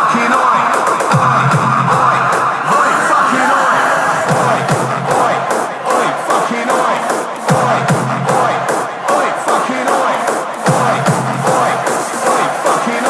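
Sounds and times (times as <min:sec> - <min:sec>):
crowd shouting and cheering: 0:00.0 - 0:13.0
dance music with steady beat: 0:00.0 - 0:13.0.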